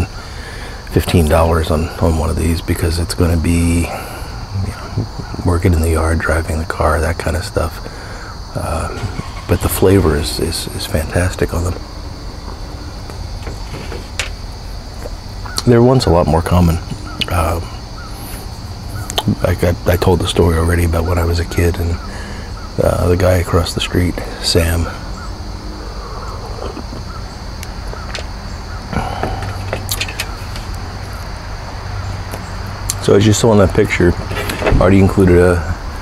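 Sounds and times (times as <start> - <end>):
insects droning: 0.0 - 36.0
steady low hum: 0.0 - 36.0
bird call: 8.0 - 22.9, 24.4 - 31.2
low rumble: 8.8 - 15.5.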